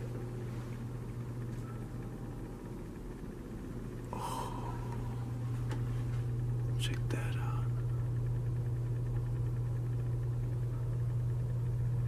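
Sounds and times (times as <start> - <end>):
steady low hum: 0.0 - 12.0
faint whispering voice: 6.8 - 7.9.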